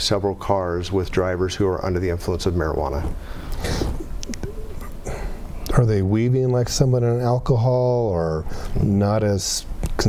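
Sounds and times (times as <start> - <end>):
low hum-like murmur: 0.0 - 10.0
person breathing: 3.2 - 5.6, 8.5 - 8.8
faint mouth clicks: 3.5 - 5.7.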